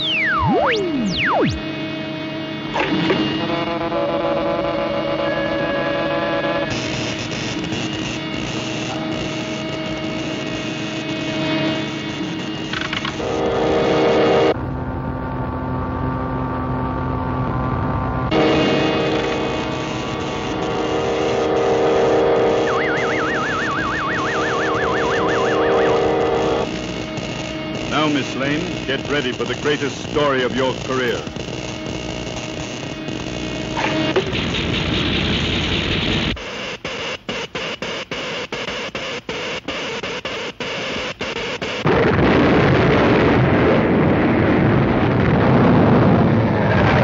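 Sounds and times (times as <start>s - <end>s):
warbling tone: 0.0s - 1.8s, 22.5s - 26.7s
electric hum of ray machine: 0.0s - 47.0s.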